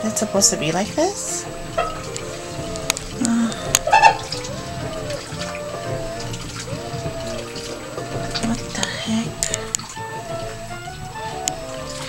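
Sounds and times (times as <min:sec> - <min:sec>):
background music with melody: 0:00.0 - 0:12.0
water running into washing machine: 0:00.0 - 0:12.0.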